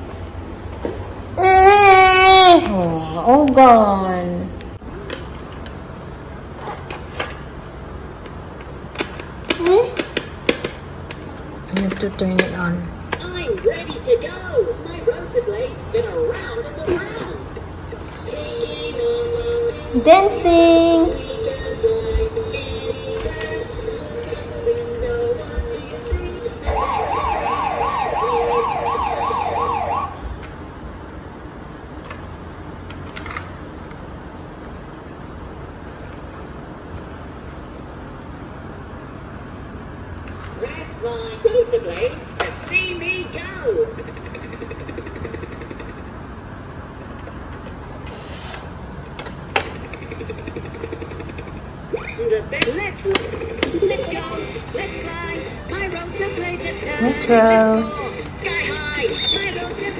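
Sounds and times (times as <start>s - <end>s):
toy siren warbling: 26.6s - 30.2s.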